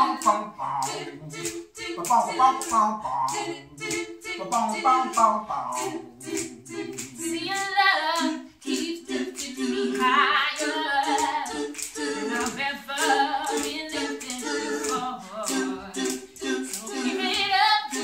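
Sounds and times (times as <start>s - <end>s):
a cappella quartet singing harmony: 0.0s - 18.0s.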